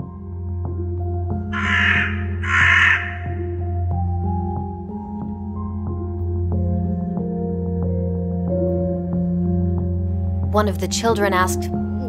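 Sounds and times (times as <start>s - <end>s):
ambient music with low drone: 0.0s - 12.0s
crow cawing: 1.5s - 3.6s.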